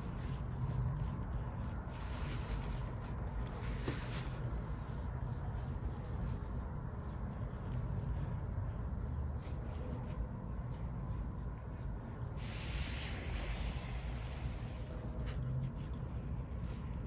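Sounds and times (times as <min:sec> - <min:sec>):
brush scratching on paper: 0:00.0 - 0:03.4, 0:09.4 - 0:17.0
low room hum: 0:00.0 - 0:17.0
hiss: 0:12.4 - 0:15.1.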